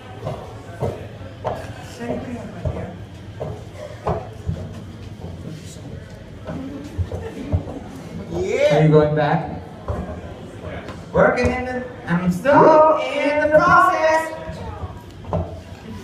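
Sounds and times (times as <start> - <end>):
indistinct voices talking: 0.0 - 16.0.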